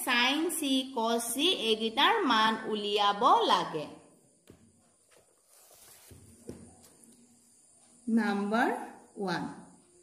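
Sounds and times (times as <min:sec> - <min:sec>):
faint taps: 0:04.4 - 0:05.3, 0:06.1 - 0:07.2.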